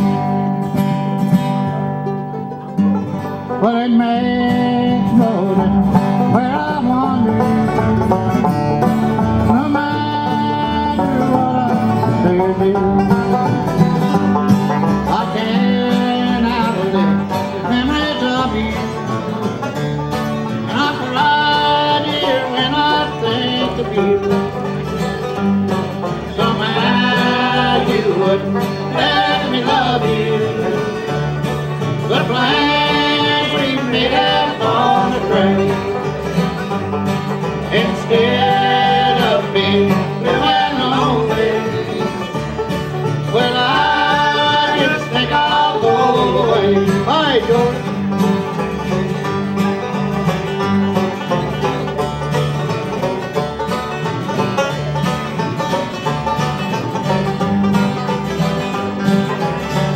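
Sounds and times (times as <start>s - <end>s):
bluegrass band playing: 0.0s - 59.9s
sung vocals: 26.4s - 30.9s, 32.1s - 35.9s, 37.7s - 42.0s, 43.3s - 47.6s.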